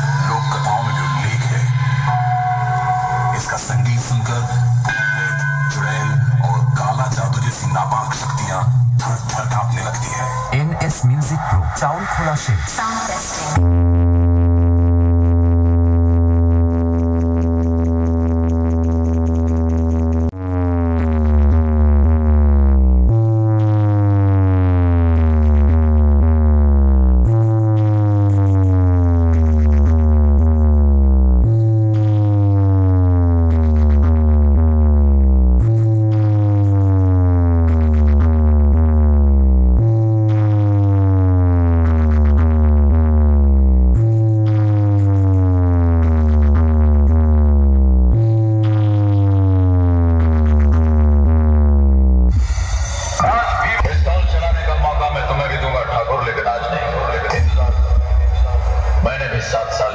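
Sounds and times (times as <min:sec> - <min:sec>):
steady deep bass tone: 0:00.0 - 0:59.9
deep bass sweeps gliding downward: 0:13.5 - 0:59.9.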